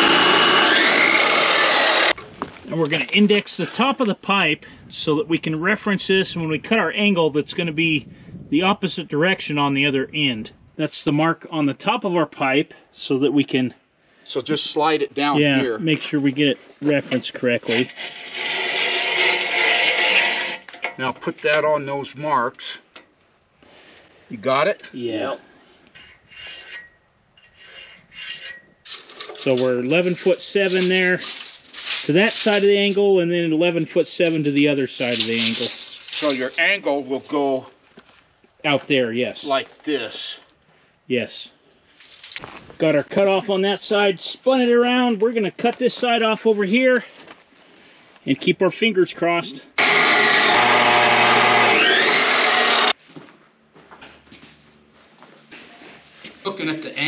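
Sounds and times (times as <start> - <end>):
saw cutting steel pipe: 0.0 - 2.2, 17.7 - 20.8, 26.0 - 29.1, 49.8 - 53.0
steel pipe scraping on wood: 17.2 - 21.6, 25.8 - 33.4, 34.1 - 36.8.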